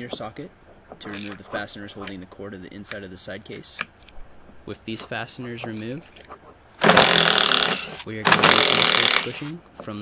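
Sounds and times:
small electric driver motor: 6.8s - 9.3s.

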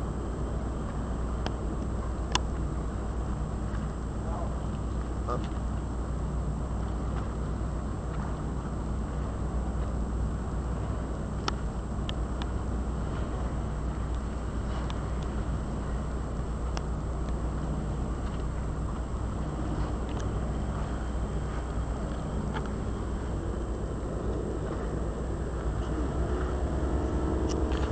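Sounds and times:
boat engine droning: 0.0s - 27.9s
water rushing: 0.0s - 27.9s.

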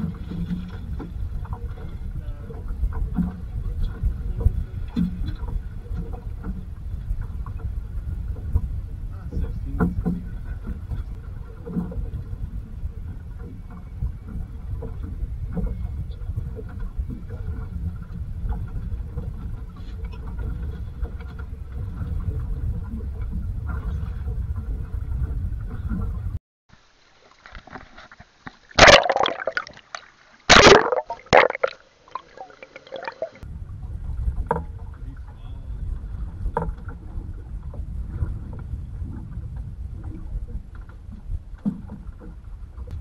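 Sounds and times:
wind and sea rumble: 0.0s - 26.4s, 28.8s - 43.0s
water rushes: 26.7s - 33.4s.

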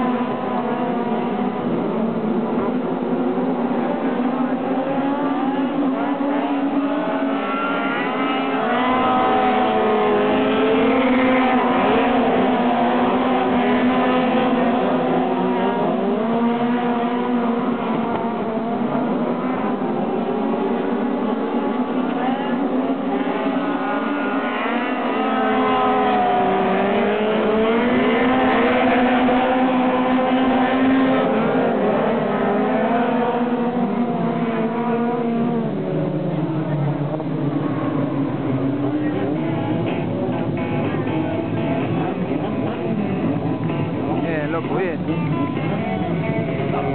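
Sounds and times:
race car engines passing: 0.0s - 46.9s.

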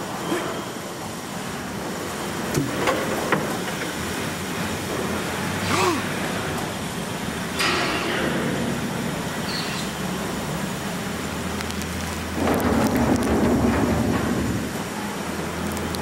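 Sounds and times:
metal barrel rolling on concrete: 1.8s - 5.5s, 6.2s - 15.7s.

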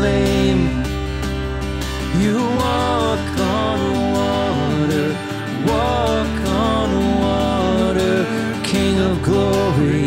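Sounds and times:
acoustic guitar strumming: 0.0s - 10.0s
person singing: 2.0s - 10.0s.

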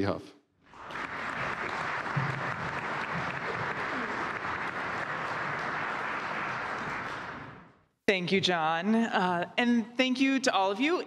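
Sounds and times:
audience applauding: 0.7s - 7.8s.

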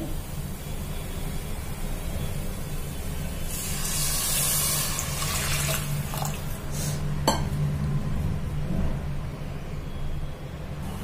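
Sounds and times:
water hissing on hot spices: 0.1s - 7.1s.

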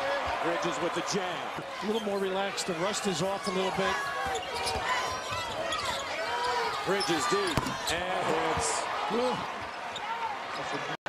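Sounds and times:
arena crowd noise: 0.0s - 11.0s
sneakers squeaking: 3.8s - 7.9s.

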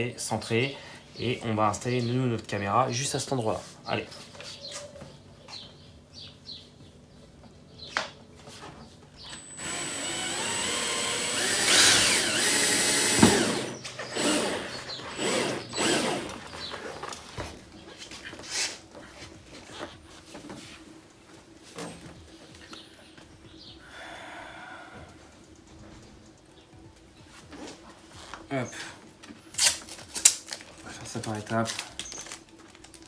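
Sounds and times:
cordless drill boring plastic: 9.3s - 16.4s.

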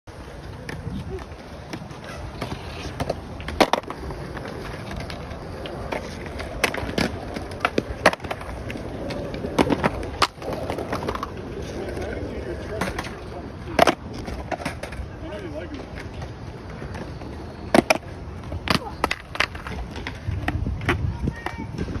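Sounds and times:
skateboards clattering on concrete: 0.1s - 22.0s.

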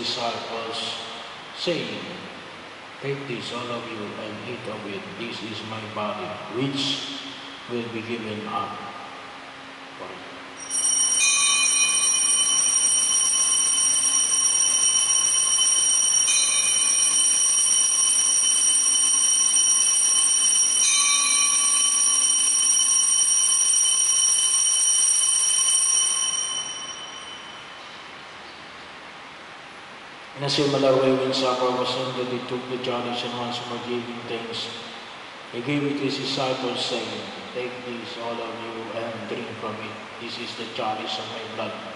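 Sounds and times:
altar bells ringing: 10.6s - 28.1s.

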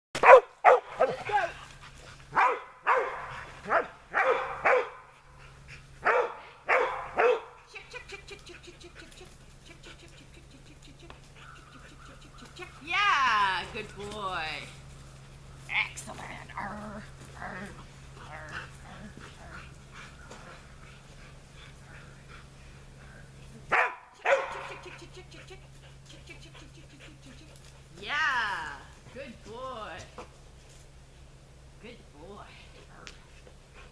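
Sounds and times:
dog barking excitedly: 0.2s - 1.6s, 2.3s - 5.1s, 6.0s - 7.7s, 23.7s - 25.5s.

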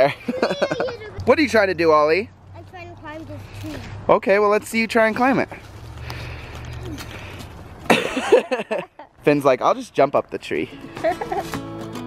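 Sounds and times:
laughter: 0.0s - 1.1s, 7.9s - 9.1s, 10.9s - 11.5s
faint outdoor background noise: 0.0s - 12.0s.

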